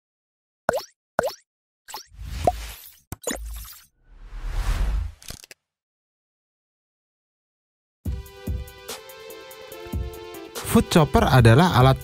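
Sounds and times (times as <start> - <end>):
cartoon plop sound effects: 0.7 - 3.5.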